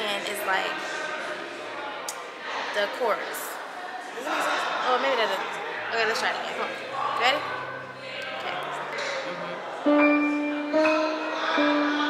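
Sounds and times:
sustained electronic keyboard note: 9.8 - 12.0.

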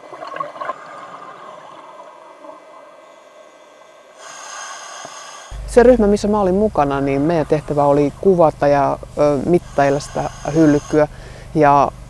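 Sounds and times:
underwater hiss: 1.1 - 5.7, 6.9 - 11.5.

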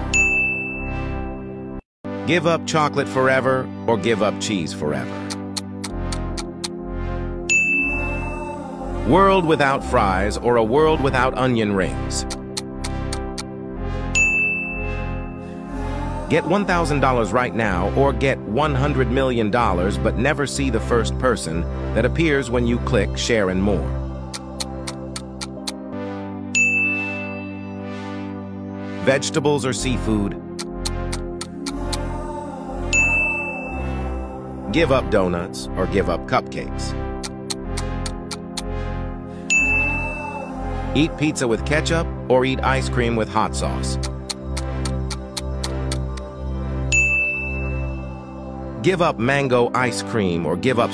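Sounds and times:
bright ding chime: 0.1 - 1.0, 7.5 - 8.3, 14.2 - 15.3, 26.6 - 27.7, 32.9 - 34.0, 39.5 - 40.4, 46.9 - 48.1
soft background music: 2.1 - 50.9
countdown ticks: 5.0 - 8.4, 12.0 - 15.3, 24.2 - 27.6, 30.4 - 32.2, 36.9 - 41.1, 43.8 - 48.1.

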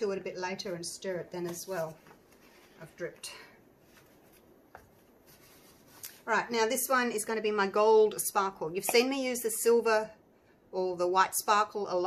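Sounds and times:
paper towel rubbing: 3.8 - 6.8.

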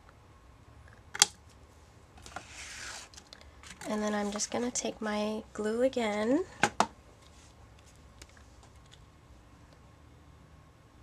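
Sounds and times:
paper rustling: 2.2 - 4.8.

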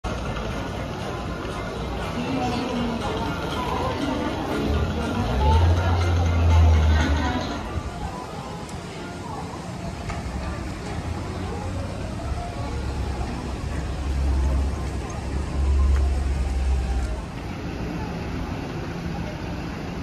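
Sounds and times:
chatter of passers-by: 0.0 - 20.0
road traffic rumble: 0.0 - 20.0.

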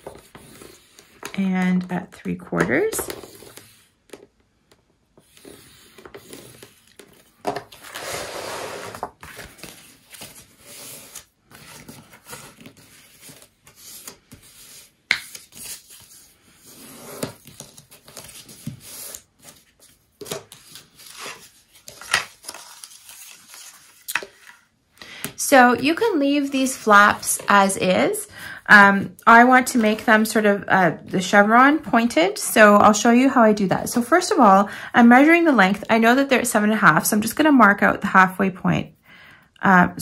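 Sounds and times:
cardstock scraping and rustling: 5.2 - 24.6.

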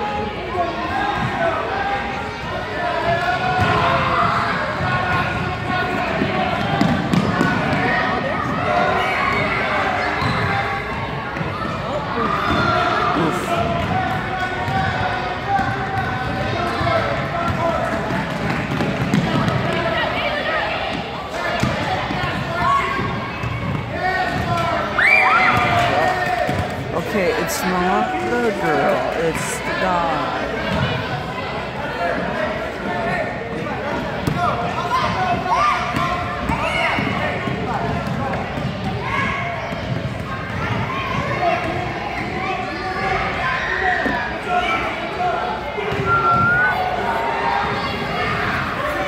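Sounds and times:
chatter of children and adults: 0.0 - 49.0.

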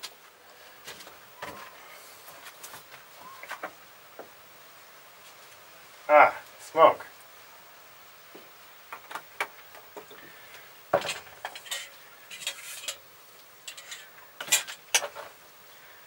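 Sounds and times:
cookware clinking and scraping: 11.0 - 13.0, 13.6 - 15.3.

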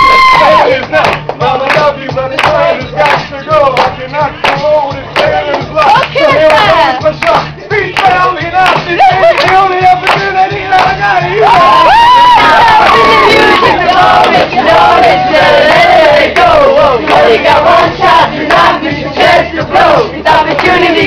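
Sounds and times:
group singing along to pop song: 0.4 - 21.0.

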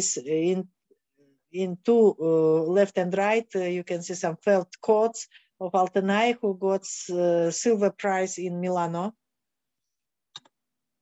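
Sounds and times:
computer mouse click: 10.3 - 10.6.

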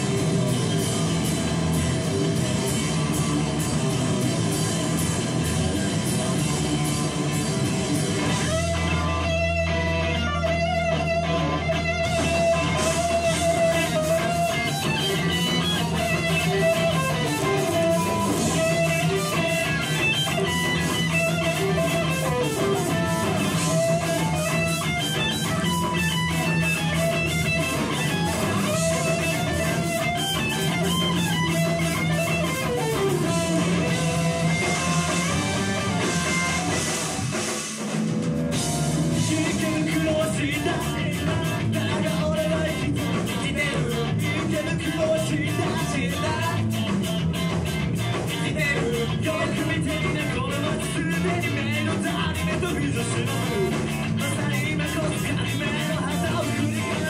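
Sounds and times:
electric guitar: 0.0 - 57.0
live rock band playing: 0.0 - 57.0.

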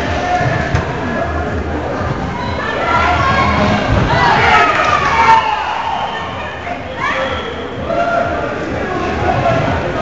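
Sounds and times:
players shouting: 2.4 - 6.2.

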